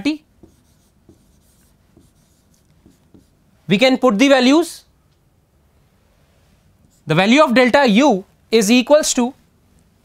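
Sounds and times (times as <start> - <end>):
chalk scratching on chalkboard: 0.4 - 3.4
chalk tapping: 0.4 - 3.4.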